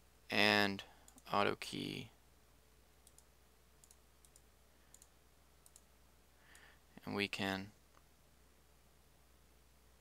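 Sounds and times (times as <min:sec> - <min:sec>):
faint computer mouse clicks: 0:01.1 - 0:01.3, 0:03.0 - 0:05.9, 0:06.5 - 0:06.7.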